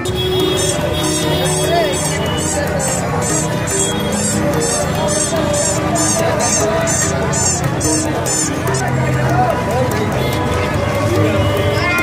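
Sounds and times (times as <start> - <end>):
plastic toy horns honking: 0.0 - 9.1
crowd chatter: 0.0 - 12.0.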